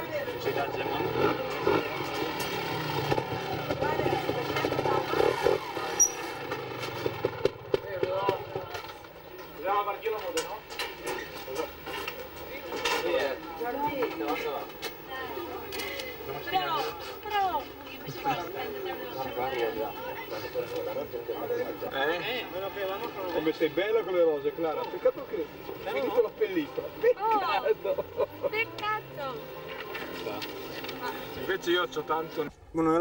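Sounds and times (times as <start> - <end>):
people talking: 3.4 - 6.0, 7.7 - 33.0.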